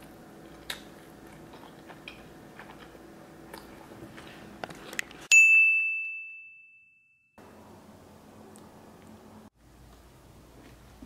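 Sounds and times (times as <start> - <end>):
bright bell ding: 5.3 - 7.4.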